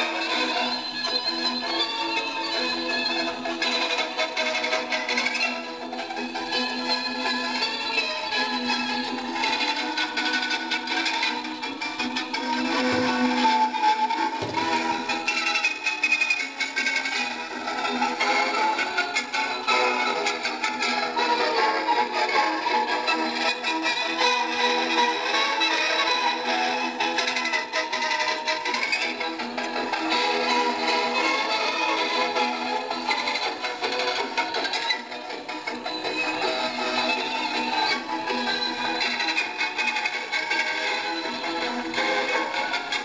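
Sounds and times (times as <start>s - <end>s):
gramophone playing thin music: 0.0s - 43.0s.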